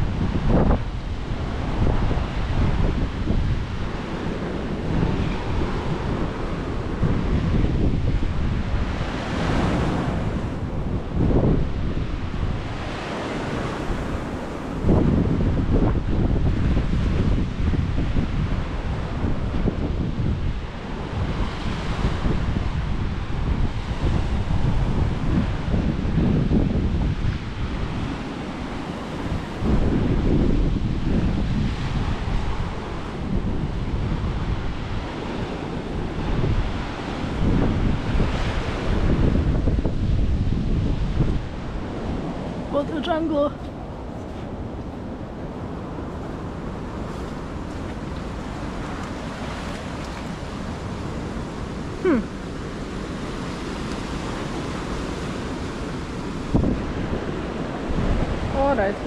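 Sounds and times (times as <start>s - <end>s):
ocean surf breaking: 0.0s - 59.0s
wind buffeting microphone: 0.0s - 59.0s.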